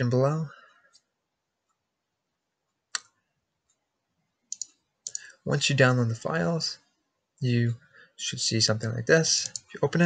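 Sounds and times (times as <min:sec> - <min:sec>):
computer mouse clicks: 0:04.5 - 0:05.3, 0:09.4 - 0:09.8.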